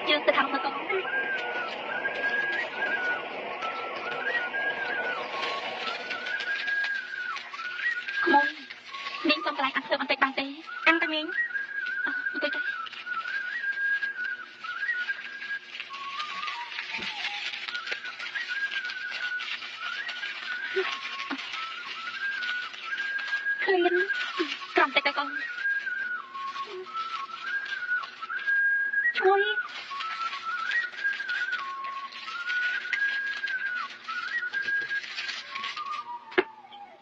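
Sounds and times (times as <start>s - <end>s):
crackly hiss: 0.0s - 36.5s
high whistle-like melody: 0.0s - 37.0s.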